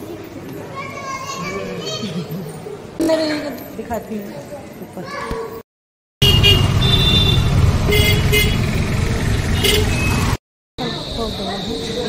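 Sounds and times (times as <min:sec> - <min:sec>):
auto-rickshaw engine: 0:06.2 - 0:12.0
road traffic passing: 0:06.2 - 0:12.0.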